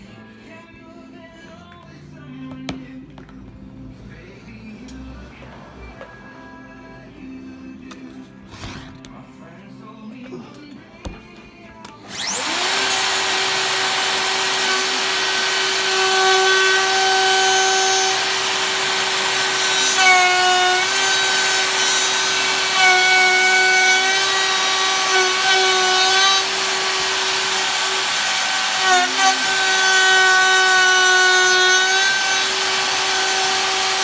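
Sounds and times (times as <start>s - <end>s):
router motor whine: 12.1s - 34.0s.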